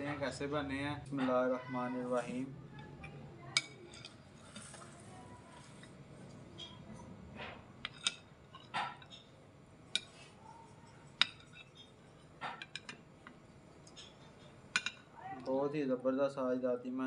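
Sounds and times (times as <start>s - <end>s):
metal spoon clinking on ceramic bowl: 3.6s - 4.2s, 7.8s - 9.3s, 9.9s - 13.0s, 13.9s - 15.1s.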